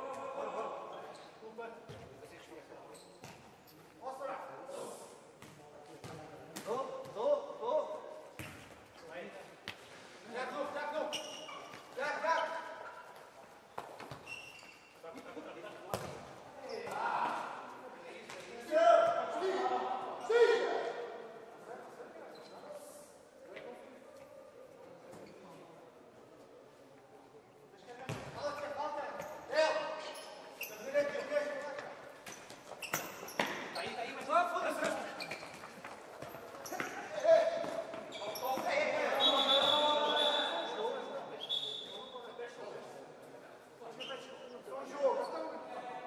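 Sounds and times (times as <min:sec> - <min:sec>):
ball kicked and bouncing: 0:15.9 - 0:16.2
players shouting in a hall: 0:18.6 - 0:21.2.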